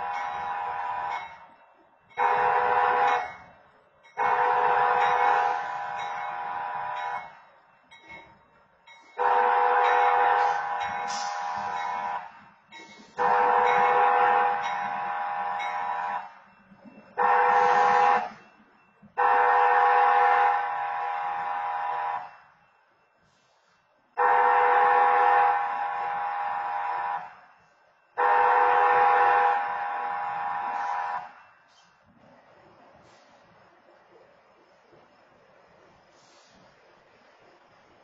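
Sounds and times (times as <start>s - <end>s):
locomotive air horn blasts: 0.0s - 1.2s, 2.2s - 3.3s, 4.2s - 7.1s, 9.2s - 12.3s, 13.1s - 16.3s, 17.2s - 18.4s, 19.2s - 22.4s, 24.2s - 27.4s, 28.2s - 31.4s.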